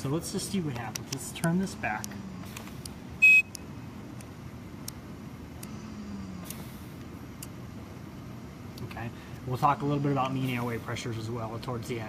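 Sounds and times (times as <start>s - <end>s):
steady low hum: 0.0s - 12.0s
short electronic beep: 3.2s - 3.5s.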